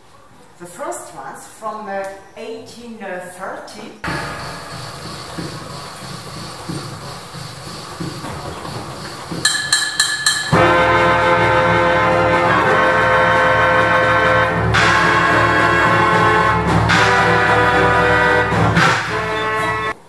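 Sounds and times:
short organ chords: 0:04.0 - 0:20.0
low mechanical rumble: 0:04.1 - 0:09.4
loud orchestrion music from pipes: 0:10.5 - 0:20.0.

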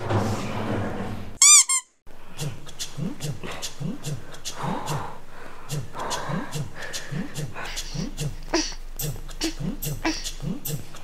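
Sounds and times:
squeaky toy squeaks: 0:01.4 - 0:02.0.

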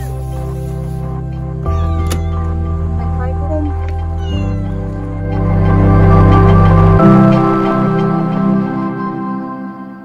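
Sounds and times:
background music: 0:00.0 - 0:10.0
kitten meowing: 0:01.6 - 0:03.0, 0:03.6 - 0:05.0.

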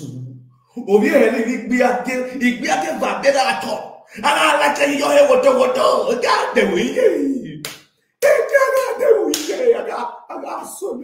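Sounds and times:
man shouting excitedly: 0:00.8 - 0:07.6, 0:08.2 - 0:11.0
sharp hand clap: 0:07.6 - 0:09.8.

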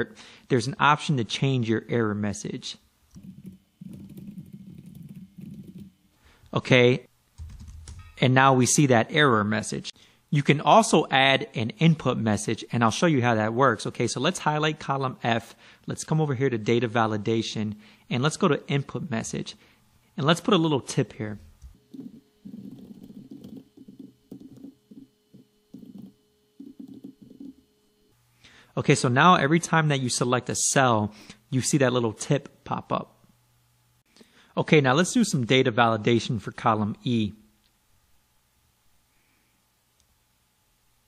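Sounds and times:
fast typing on keyboard: 0:03.2 - 0:05.9, 0:07.4 - 0:08.1, 0:21.9 - 0:25.0, 0:25.7 - 0:27.5.

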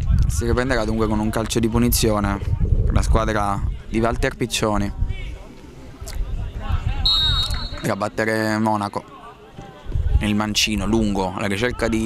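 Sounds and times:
referee's whistle blast: 0:07.0 - 0:08.0.

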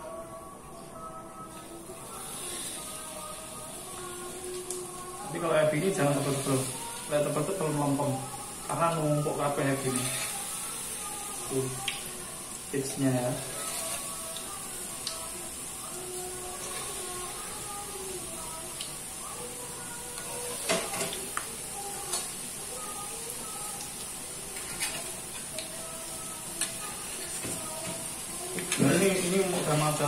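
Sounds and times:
batter sizzling in hot oil: 0:01.6 - 0:30.0.

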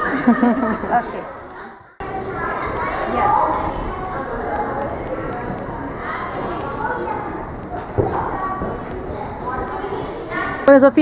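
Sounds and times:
distant children's voices in gymnasium: 0:00.0 - 0:11.0
people talking: 0:02.0 - 0:11.0.

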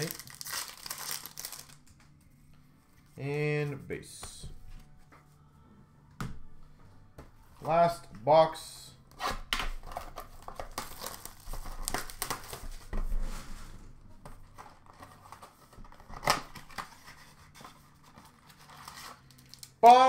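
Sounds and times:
cardboard and wrappers tearing: 0:00.0 - 0:01.8, 0:09.9 - 0:12.6, 0:18.2 - 0:19.8.

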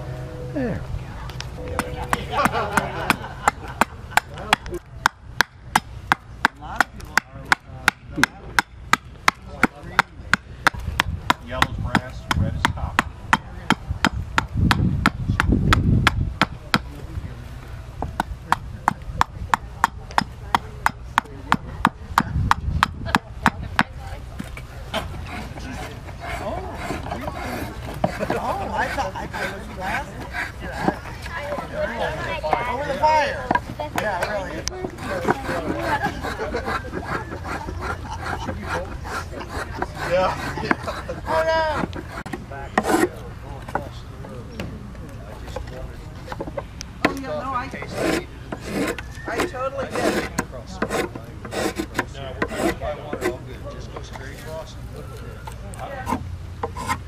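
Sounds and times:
hatchet chopping wood: 0:01.8 - 0:16.9, 0:18.0 - 0:24.0, 0:46.3 - 0:53.4.

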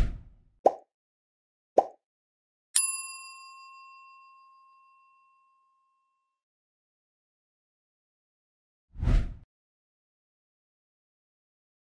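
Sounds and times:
bell-like ding: 0:02.8 - 0:06.2
low whoosh: 0:09.0 - 0:09.4.

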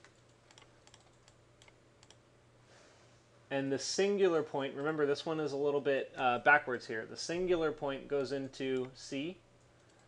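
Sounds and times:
computer keyboard and mouse clicks: 0:00.0 - 0:02.2.

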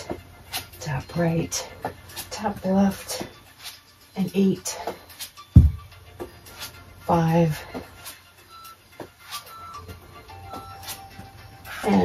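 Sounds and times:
feet tapping on yoga mat: 0:04.7 - 0:06.8, 0:08.9 - 0:11.4.

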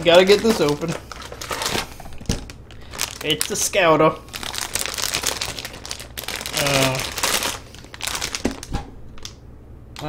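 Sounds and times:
plastic packaging crinkling: 0:00.0 - 0:09.4.

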